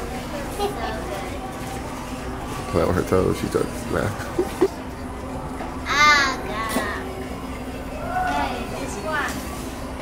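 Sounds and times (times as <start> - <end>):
low mechanical hum of spa chair: 0.0 - 10.0.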